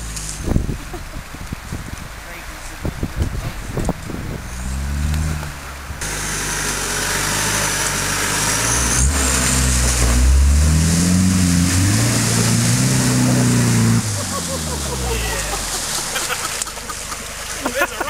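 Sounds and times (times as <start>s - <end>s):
suv engine revving: 0.0s - 17.7s.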